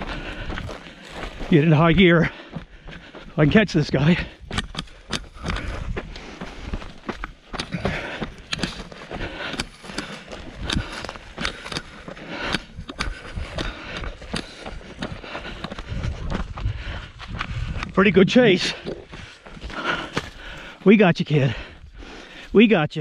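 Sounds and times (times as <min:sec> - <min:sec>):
running footsteps on gravel: 0:00.0 - 0:22.7.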